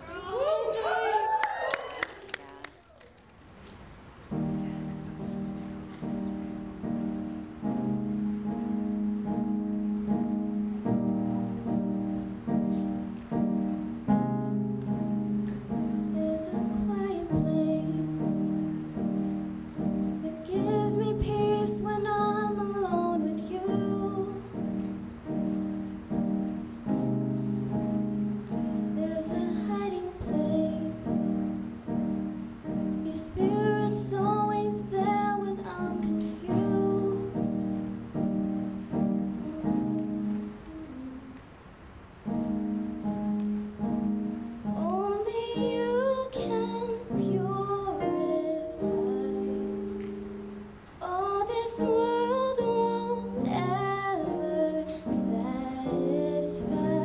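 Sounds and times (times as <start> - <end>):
piano chords on keyboard: 4.2 - 57.0
woman singing: 16.0 - 18.7, 20.1 - 25.0, 28.8 - 31.6, 32.9 - 38.0, 39.1 - 41.5, 44.7 - 50.0, 51.0 - 57.0.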